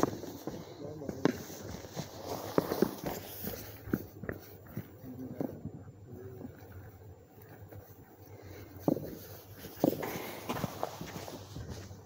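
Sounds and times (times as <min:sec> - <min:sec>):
faint voices: 0:00.0 - 0:08.9.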